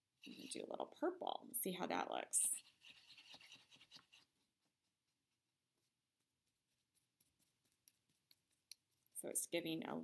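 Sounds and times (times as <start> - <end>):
paintbrush scratching in paint pan: 2.0 - 10.0.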